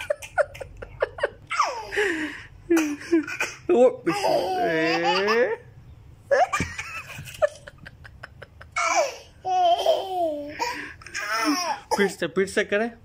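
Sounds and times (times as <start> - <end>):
toddler laughing: 0.0 - 2.0, 2.7 - 5.6, 8.3 - 12.1.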